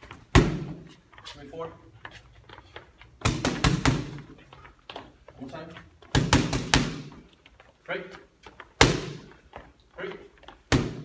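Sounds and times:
boxing gloves hitting mitts: 0.0 - 1.0, 3.1 - 5.2, 6.0 - 7.3, 8.6 - 11.0.

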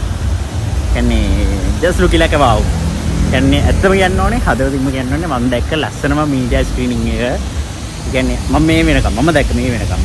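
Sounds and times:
low rumble of road traffic: 0.0 - 10.0
man talking: 0.8 - 10.0.

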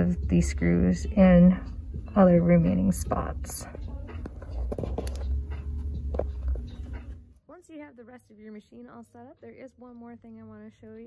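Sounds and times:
handled microphone rumble: 0.0 - 7.3.

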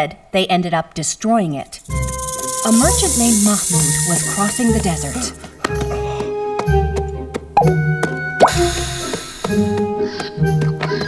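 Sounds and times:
background music: 1.8 - 11.0
cartoon water drop plops: 8.4 - 8.8.

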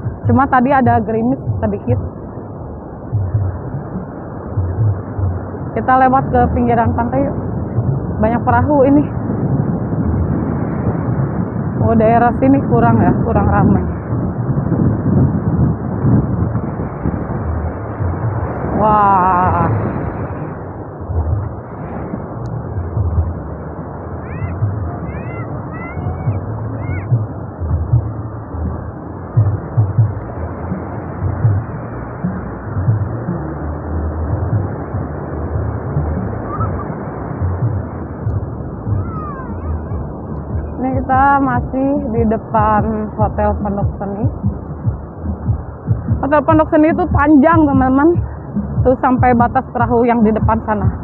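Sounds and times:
ocean surf washing on beach: 0.0 - 51.0.

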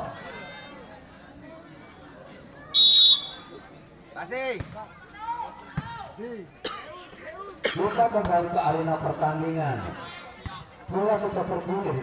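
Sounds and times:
referee whistle blast: 2.8 - 3.4.

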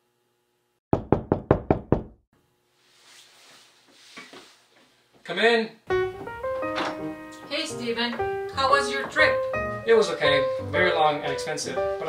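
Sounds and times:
knocking on a door: 0.9 - 2.2.

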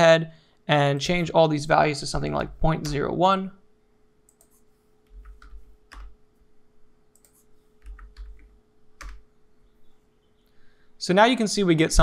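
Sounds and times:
faint steady hum: 0.0 - 12.0
computer keyboard typing: 4.3 - 6.2, 7.2 - 9.2.

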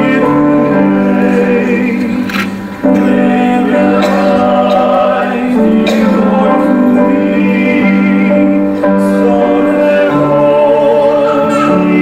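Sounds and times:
vocal duet with instruments: 0.0 - 12.0.

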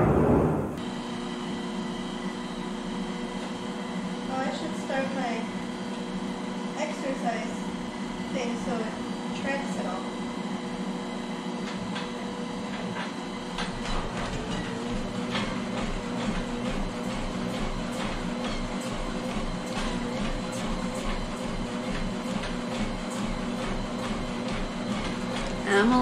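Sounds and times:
treadmill motor hum: 0.0 - 26.0.

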